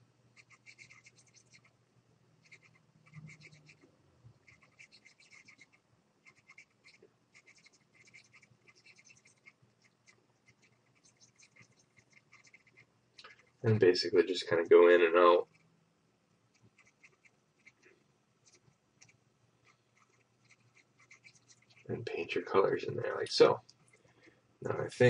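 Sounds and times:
low steady hum: 0:00.0 - 0:25.0
stylus scratching graphics tablet: 0:00.4 - 0:01.7, 0:02.4 - 0:03.8, 0:04.4 - 0:12.9, 0:16.6 - 0:17.8, 0:18.4 - 0:21.9.

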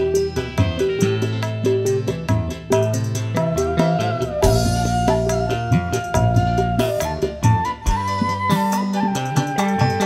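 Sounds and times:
live band through loudspeakers: 0:00.0 - 0:10.0
flute melody: 0:03.3 - 0:10.0.

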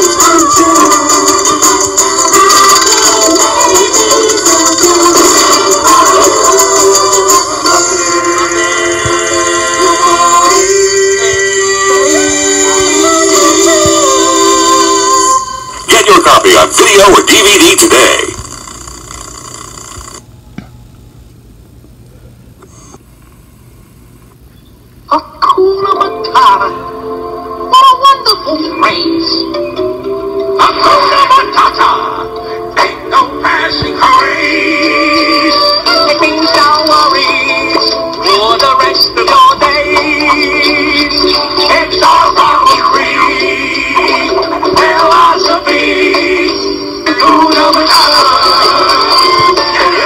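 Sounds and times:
song with singing voice: 0:00.0 - 0:18.4, 0:25.1 - 0:50.0
video tape hiss: 0:00.0 - 0:50.0
faint high whines: 0:22.1 - 0:25.0.

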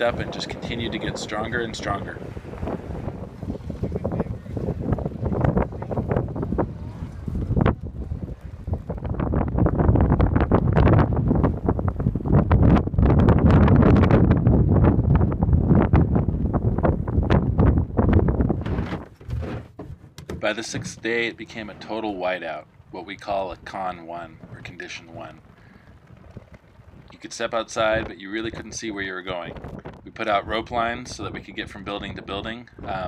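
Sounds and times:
strong wind buffeting microphone: 0:00.0 - 0:19.7, 0:20.4 - 0:33.0.

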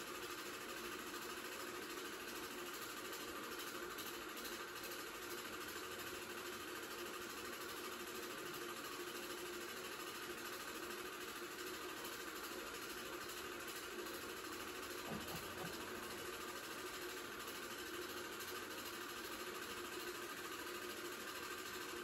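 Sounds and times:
film projector whirring: 0:00.0 - 0:22.0.

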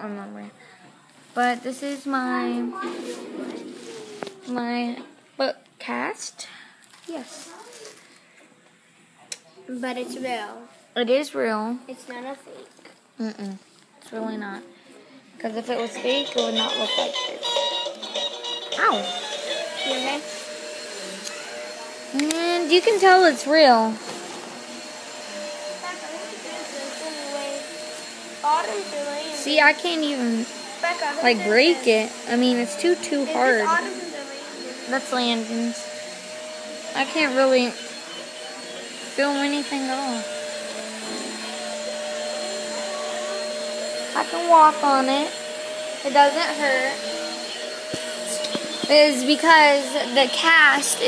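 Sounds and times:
child speaking: 0:01.4 - 0:04.6, 0:07.1 - 0:08.0, 0:09.7 - 0:10.7, 0:11.9 - 0:12.7, 0:15.6 - 0:17.2, 0:18.8 - 0:19.1, 0:19.9 - 0:20.2, 0:25.8 - 0:27.8, 0:28.4 - 0:30.2, 0:30.8 - 0:35.2, 0:46.0 - 0:47.0, 0:48.8 - 0:51.0
faint voices: 0:14.6 - 0:51.0
appliance motor hum: 0:15.9 - 0:51.0.

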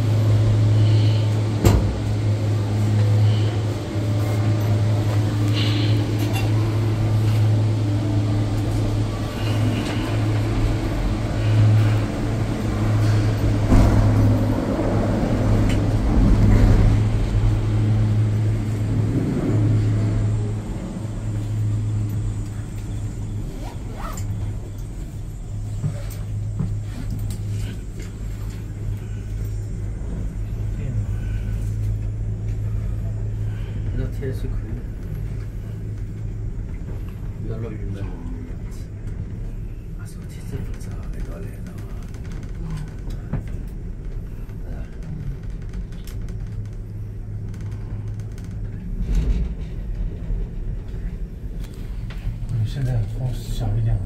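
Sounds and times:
gondola cabin humming: 0:00.0 - 0:54.0
station drive rumbling: 0:00.0 - 0:54.0.

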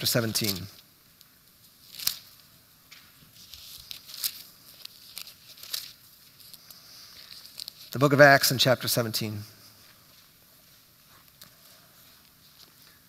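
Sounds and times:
paper pages rustling: 0:00.0 - 0:00.8, 0:01.7 - 0:08.1, 0:11.0 - 0:13.0.

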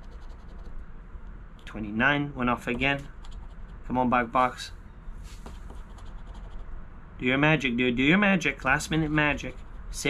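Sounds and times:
scratching lottery ticket: 0:05.4 - 0:06.6, 0:08.8 - 0:10.0.

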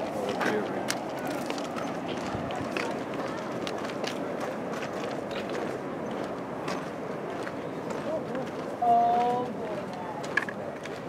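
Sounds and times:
footsteps on gravel: 0:00.0 - 0:11.0
people chattering: 0:00.0 - 0:11.0.

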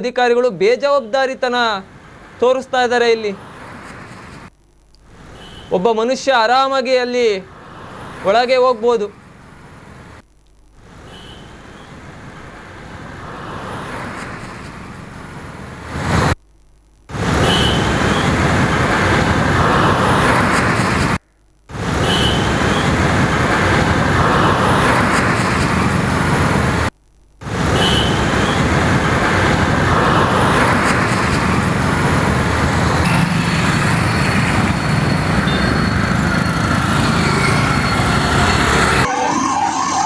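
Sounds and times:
vehicles passing close by: 0:07.5 - 0:10.2, 0:12.3 - 0:16.3, 0:28.0 - 0:39.1.

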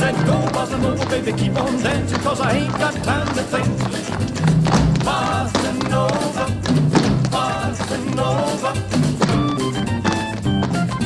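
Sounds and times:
upbeat latin rock band music: 0:00.0 - 0:11.0.

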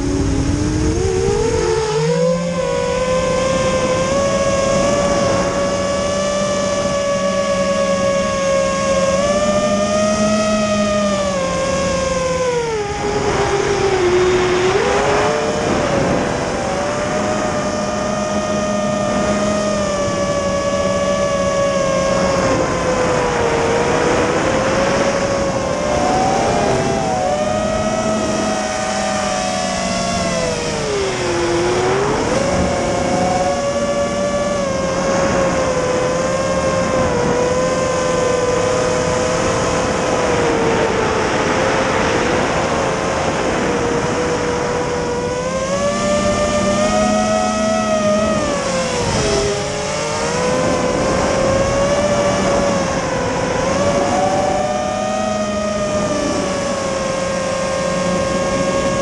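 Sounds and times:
drone motors whining: 0:00.0 - 0:59.0.

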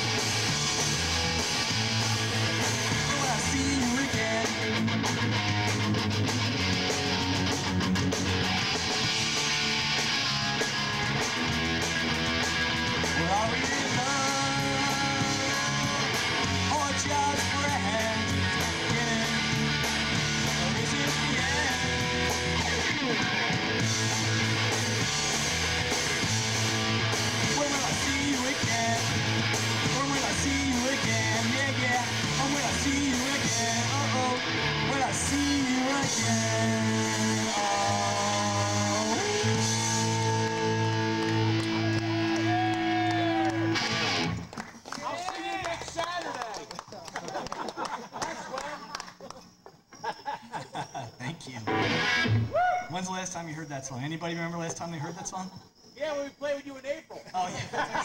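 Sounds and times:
bass line riff: 0:00.0 - 0:44.5, 0:51.7 - 0:52.5
drums: 0:00.0 - 0:44.5
strummed electric guitar: 0:00.0 - 0:44.5, 0:51.6 - 0:52.5.

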